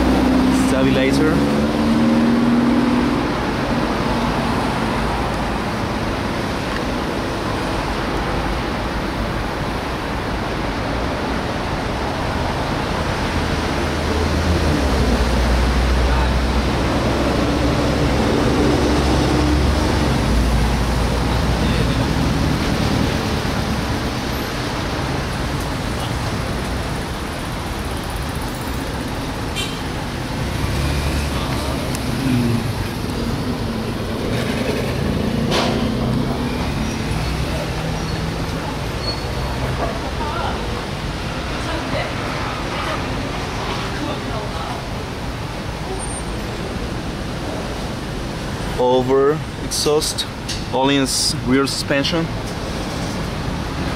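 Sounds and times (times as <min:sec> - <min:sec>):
road traffic rumble: 0:00.0 - 0:53.9.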